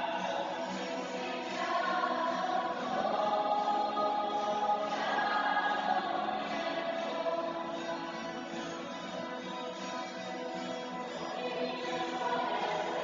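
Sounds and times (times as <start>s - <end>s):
young choir singing a hymn: 0.0s - 8.4s, 11.3s - 13.0s
acoustic guitar: 0.0s - 13.0s.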